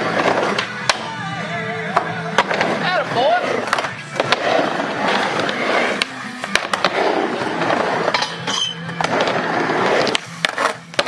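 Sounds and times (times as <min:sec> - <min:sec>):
skateboard wheels rolling on ramp: 0:00.0 - 0:00.7, 0:02.3 - 0:11.0.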